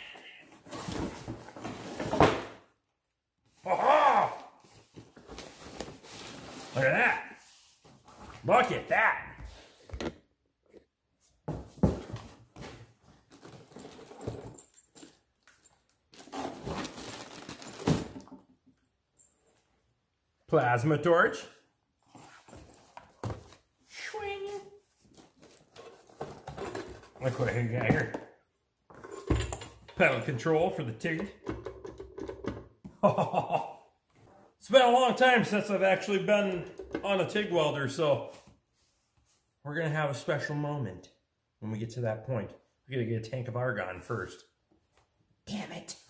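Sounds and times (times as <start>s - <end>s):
plastic-wrapped cables rustling: 13.1s - 18.4s
man laughing: 33.0s - 33.9s.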